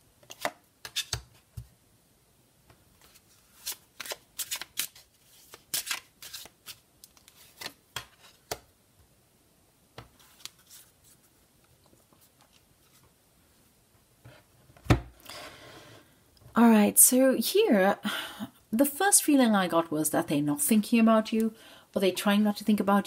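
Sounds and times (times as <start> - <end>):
cards shuffled by hand: 0.2 - 1.7, 3.0 - 8.6, 10.0 - 13.1.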